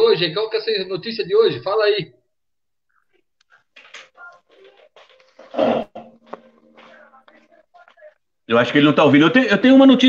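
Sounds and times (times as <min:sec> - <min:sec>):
faint scattered sounds: 0:02.2 - 0:08.8.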